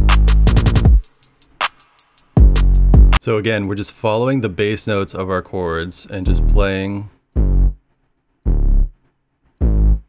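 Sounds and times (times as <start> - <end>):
distorted bass notes: 0.0 - 1.0, 2.4 - 3.2, 6.3 - 6.7, 7.4 - 7.8, 8.5 - 9.0, 9.6 - 10.0.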